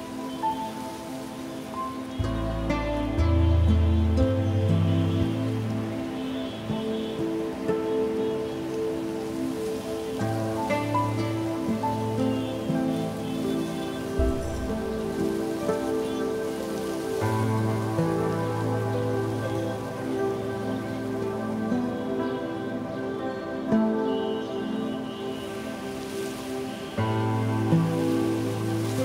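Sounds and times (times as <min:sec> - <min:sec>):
instrumental music with held notes: 0:00.0 - 0:29.0
low sustained note: 0:12.2 - 0:16.6.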